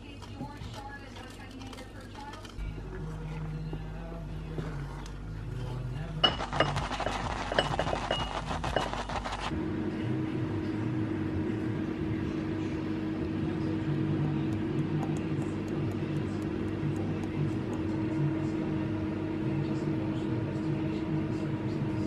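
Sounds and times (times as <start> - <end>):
wooden spoon scraping saucepan: 4.4 - 9.5.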